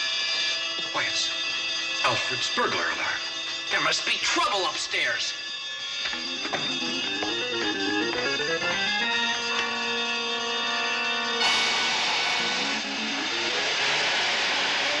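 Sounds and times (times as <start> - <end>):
orchestral tv score: 0.7 - 13.0
loud hiss of steam: 11.4 - 15.0.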